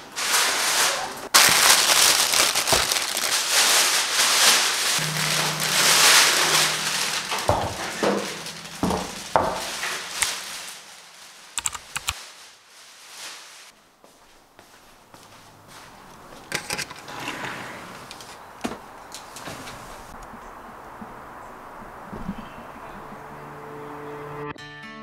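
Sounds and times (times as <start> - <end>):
plastic wrap crinkling: 0.2 - 13.8.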